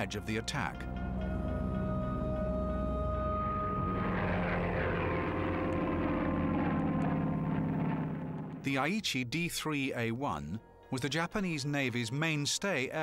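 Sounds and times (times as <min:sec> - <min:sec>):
propeller aircraft engine running: 0:00.0 - 0:08.7
music: 0:00.0 - 0:13.0.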